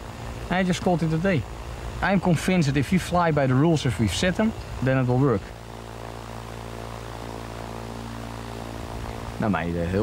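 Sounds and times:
propeller aircraft engine drone: 0.0 - 10.0.

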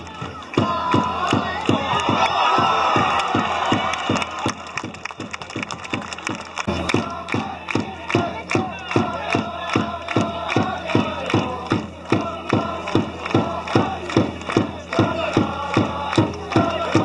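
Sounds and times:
crowd chanting: 0.0 - 5.0, 5.8 - 17.0
drum beating steady rhythm: 0.0 - 17.0.

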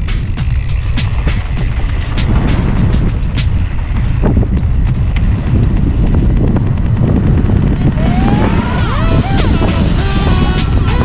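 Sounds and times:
bike clicks and rattles: 0.0 - 8.0
wind buffeting microphone: 0.0 - 11.0.

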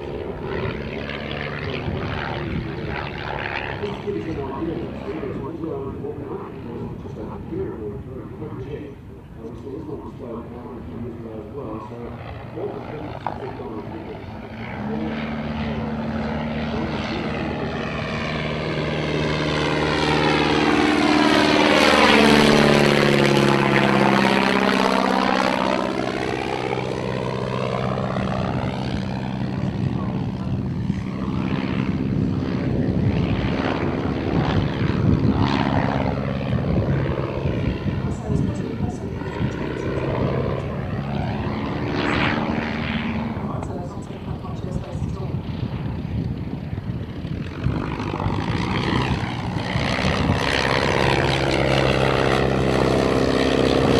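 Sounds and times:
biplane engine and propeller: 0.0 - 53.9.

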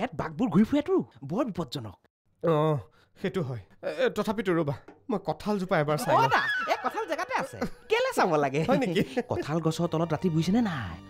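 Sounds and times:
man laughing and giggling: 8.6 - 9.6.

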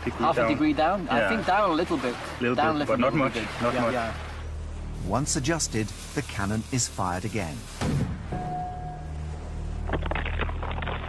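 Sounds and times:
low steady rumble: 0.0 - 11.0
crackling splashes on water: 5.2 - 8.1, 9.8 - 11.0.

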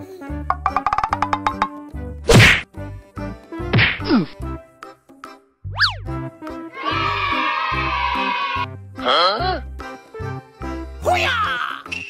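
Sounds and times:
background music: 0.0 - 12.0
loud whack: 2.3 - 2.7, 3.7 - 4.1.

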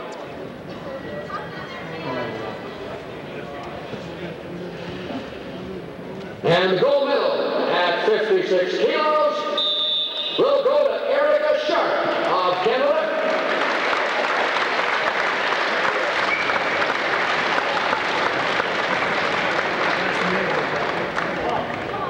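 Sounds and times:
spectators clapping and cheering: 12.0 - 22.0.

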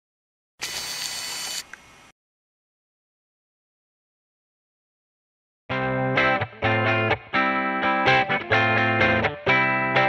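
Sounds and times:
bright hissy noise: 0.6 - 2.1.

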